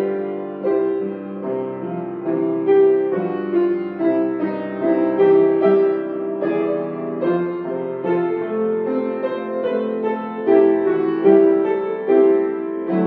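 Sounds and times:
solo piano hymn: 0.0s - 13.0s.

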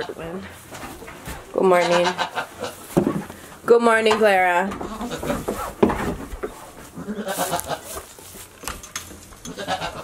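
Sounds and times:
rustling and knocking: 2.8s - 3.4s, 4.0s - 7.0s
goats bleating: 7.0s - 8.0s, 9.5s - 10.0s.

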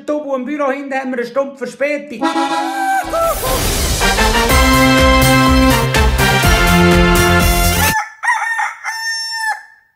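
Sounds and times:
music: 2.2s - 8.0s
rooster crowing: 2.5s - 3.5s, 7.8s - 9.9s.

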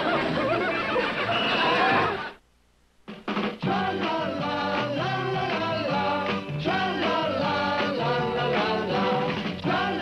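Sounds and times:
high-pitched cartoon laughter: 0.0s - 2.3s.

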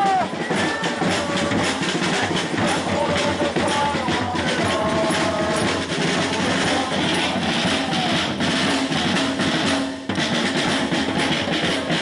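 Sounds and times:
snare drum and tambourines: 0.0s - 12.0s.

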